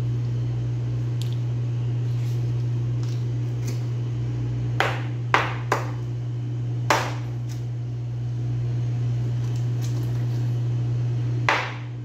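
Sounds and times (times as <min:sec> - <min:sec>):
steady low hum: 0:00.0 - 0:12.0
knife chopping on cutting board: 0:04.8 - 0:06.0, 0:06.9 - 0:07.3, 0:11.5 - 0:11.9.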